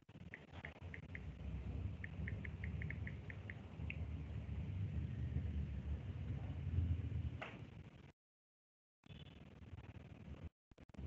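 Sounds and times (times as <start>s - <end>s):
low background rumble: 0.2s - 8.1s.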